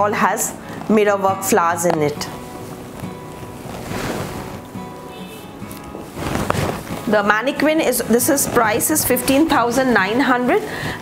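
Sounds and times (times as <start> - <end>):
silk fabric rustling: 0.0 - 11.0
soft background music: 0.0 - 11.0.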